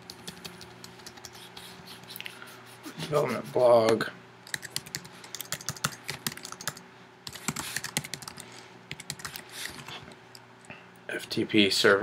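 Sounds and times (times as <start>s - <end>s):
computer keyboard typing: 0.1s - 1.4s, 4.5s - 9.4s.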